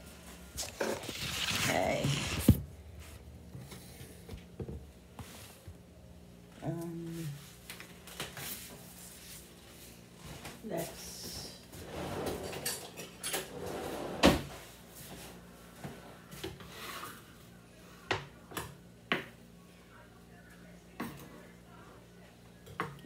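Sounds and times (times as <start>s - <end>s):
scraping and rustling: 0.6s - 3.2s
pans and utensils clattering: 12.2s - 14.4s.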